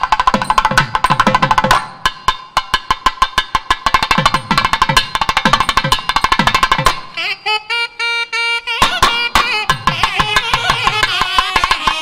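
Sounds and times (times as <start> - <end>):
drum rapid sharp strokes: 0.0 - 7.2, 8.8 - 12.0
devotional temple music: 0.0 - 12.0.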